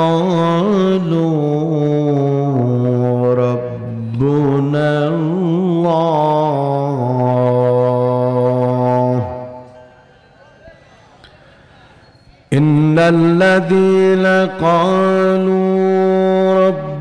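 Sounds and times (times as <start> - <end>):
man reciting melodically: 0.0 - 9.7, 12.5 - 17.0.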